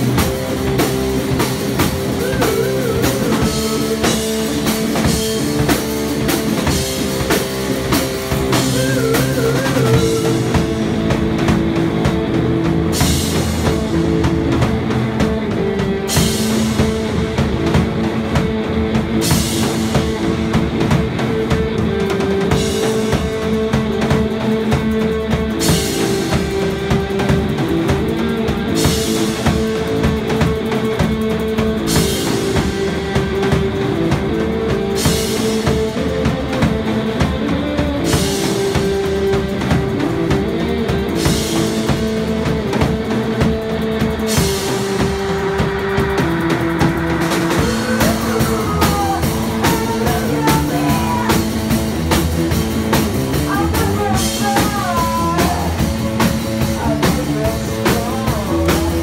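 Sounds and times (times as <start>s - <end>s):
live rock band playing: 0.0s - 59.0s.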